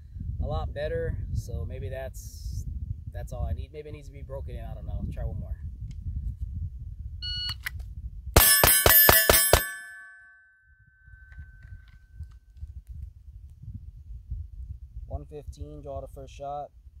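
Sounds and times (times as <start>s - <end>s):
wind rumbling on microphone: 0.0s - 8.4s, 11.0s - 17.0s
rapid pistol shots: 8.4s - 9.8s
steel target ringing: 8.4s - 11.3s.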